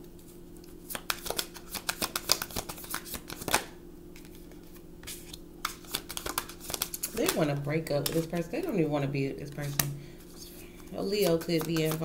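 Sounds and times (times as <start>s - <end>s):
cards being shuffled: 0.9s - 8.4s, 9.5s - 12.0s.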